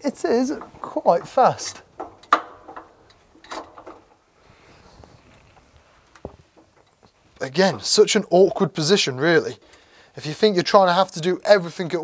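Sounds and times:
rustle: 1.6s - 7.5s.

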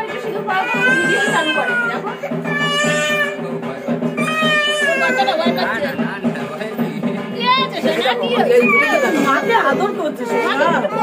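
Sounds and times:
voices talking: 0.0s - 11.0s.

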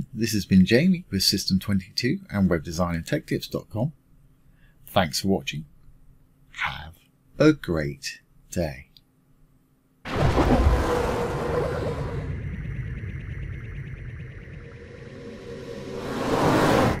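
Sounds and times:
sound effect: 10.1s - 17.0s.

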